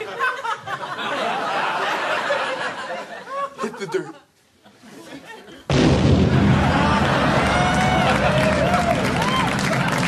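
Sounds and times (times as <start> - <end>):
explosion with deep rumble: 5.7 - 8.6
audience cheering and whooping: 6.3 - 10.0.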